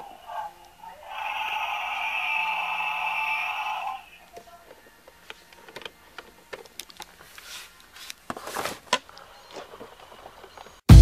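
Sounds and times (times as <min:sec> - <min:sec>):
electronic toy dinosaur roar: 0:00.0 - 0:04.2.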